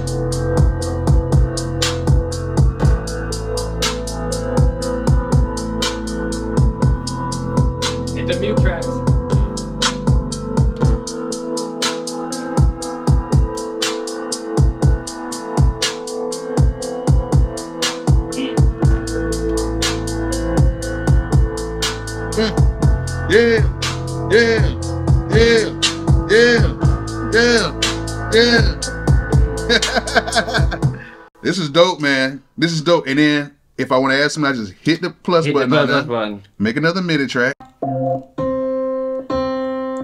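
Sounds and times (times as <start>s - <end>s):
deep kick drums: 0.6s - 3.1s, 6.6s - 11.2s, 16.6s - 19.8s, 22.4s - 23.8s, 24.5s - 27.7s, 28.4s - 29.8s
swooping melodic figure: 4.2s - 31.0s, 37.6s - 39.8s.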